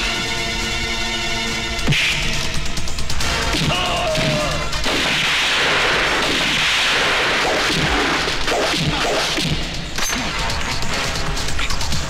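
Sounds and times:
film score music: 0.0 - 12.0
punch and smash impacts: 3.5 - 10.4.

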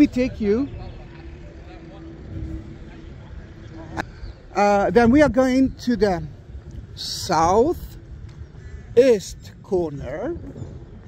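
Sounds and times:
low rumbling outdoor noise: 0.0 - 11.0.

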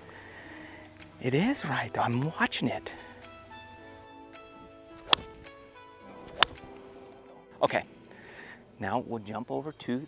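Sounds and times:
background music: 0.0 - 10.0
golf club striking ball: 4.9 - 6.9.

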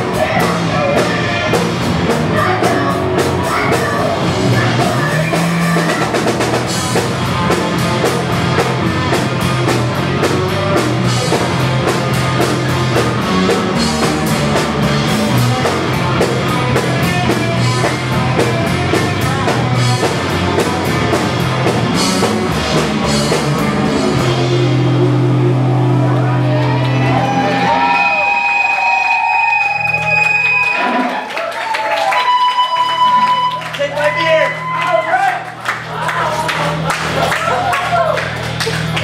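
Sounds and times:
fast driving drumming: 0.0 - 27.8
electric guitar: 0.0 - 31.3
bass guitar: 0.0 - 31.4, 32.6 - 39.0.

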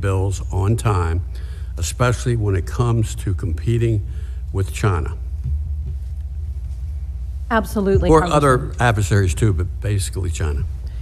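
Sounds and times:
low room rumble with hum: 0.0 - 11.0.

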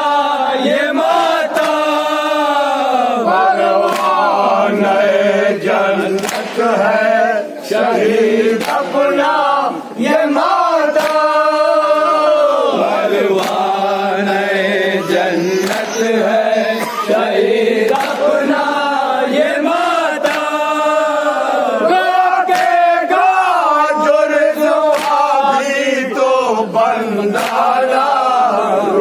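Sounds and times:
men chanting a lament: 0.0 - 29.0
hands slapping chests: 1.4 - 2.1, 3.7 - 4.4, 6.0 - 6.8, 8.5 - 9.3, 10.4 - 16.1, 17.9 - 18.4, 20.2 - 20.7, 22.4 - 22.9, 24.8 - 25.4, 27.3 - 27.8.

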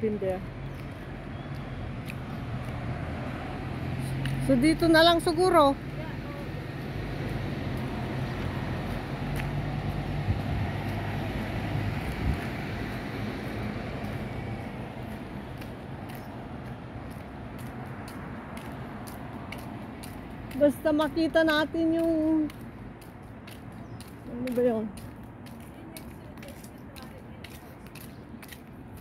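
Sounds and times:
city traffic background: 0.0 - 29.0
car engine hum and tyre noise: 5.7 - 20.6.

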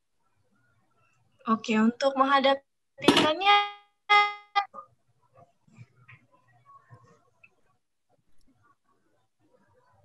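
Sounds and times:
short tone: 4.1 - 4.7.

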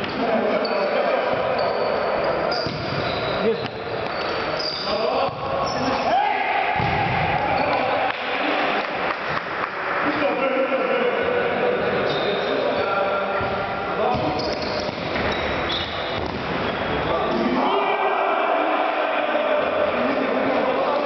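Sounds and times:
shoe squeaks: 0.0 - 6.1, 12.0 - 12.9, 14.1 - 17.4
players shouting: 4.9 - 8.8, 17.0 - 21.0.

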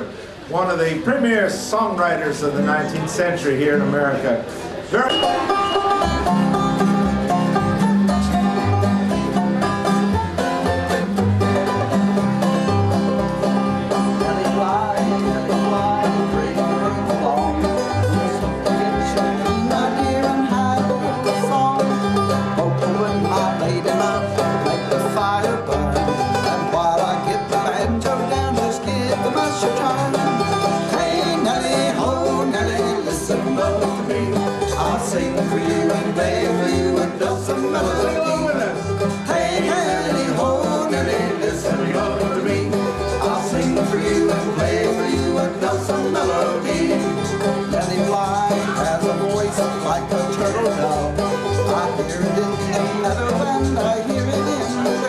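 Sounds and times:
banjo picking melody: 0.0 - 55.0
string band instrumental: 0.0 - 55.0
strummed guitar: 0.0 - 55.0.

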